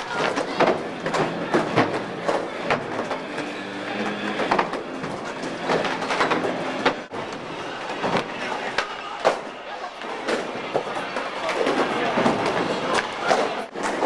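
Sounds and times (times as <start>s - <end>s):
crowd chatter: 0.0s - 14.0s.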